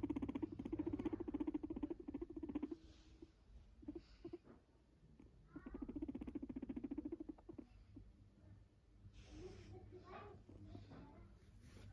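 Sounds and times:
guinea pig squeak: 0.0 - 8.1
guinea pig purring: 0.0 - 10.9.

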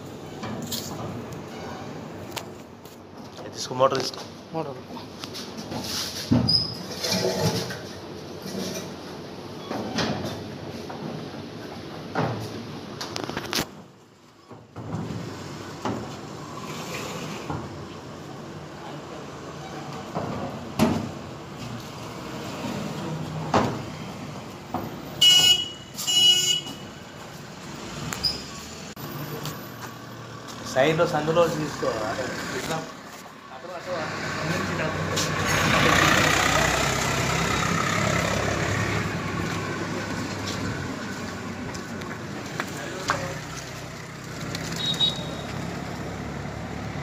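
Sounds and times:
high squeaks: 28.2 - 28.7.

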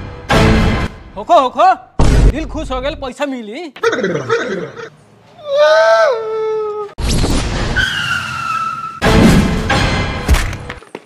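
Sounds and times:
tyre squeal: 7.8 - 9.0.

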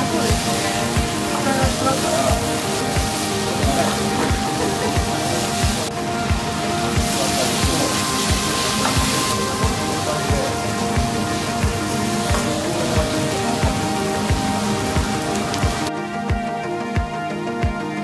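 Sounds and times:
onions sizzling in a pan: 0.0 - 15.9
background music with steady beat: 0.0 - 18.0.

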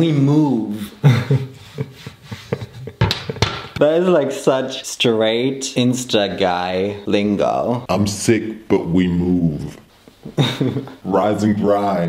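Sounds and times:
man talking: 0.0 - 1.4, 3.8 - 12.0
man laughing softly: 0.9 - 3.4, 10.2 - 11.0.

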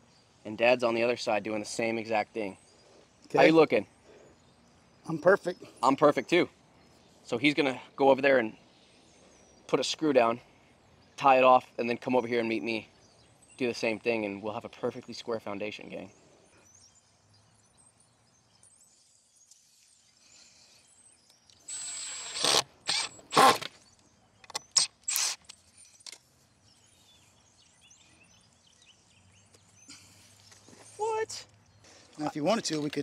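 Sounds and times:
cordless drill driving a screw: 21.6 - 23.8, 24.8 - 25.5.

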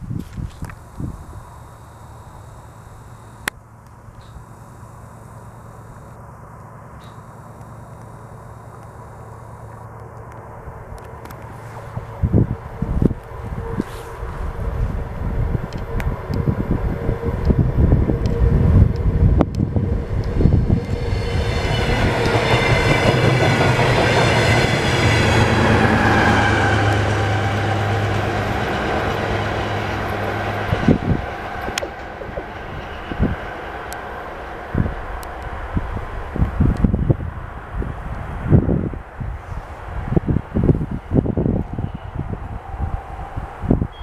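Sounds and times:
train engine and wheel noise passing: 0.0 - 44.0.

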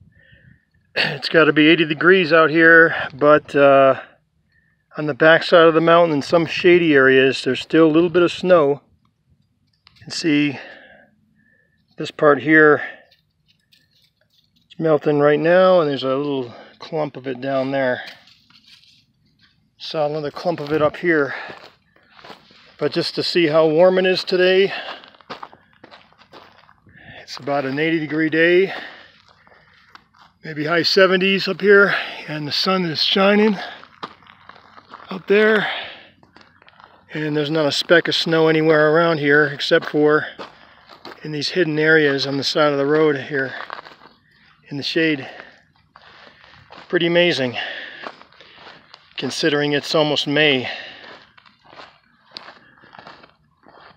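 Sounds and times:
footsteps on gravel: 12.0 - 53.9.

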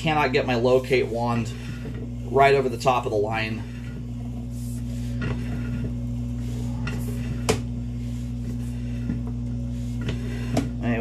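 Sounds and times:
electrical hum: 0.0 - 11.0.

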